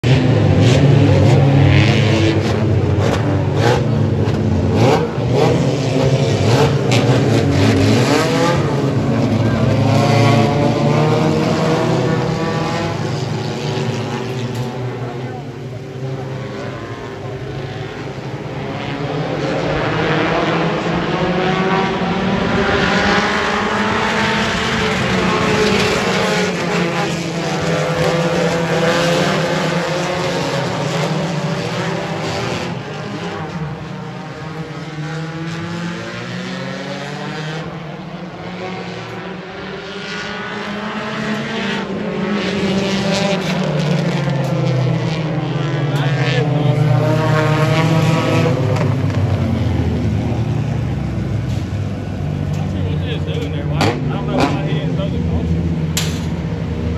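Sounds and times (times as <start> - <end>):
race car engines passing: 0.0 - 56.9.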